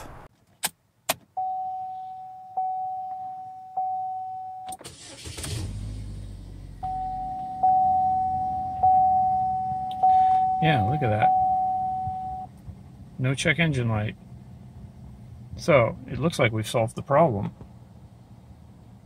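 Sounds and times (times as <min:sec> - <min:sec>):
dashboard warning chime dinging: 0:01.4 - 0:05.2, 0:06.8 - 0:12.5
car engine starting and idling: 0:03.8 - 0:19.0.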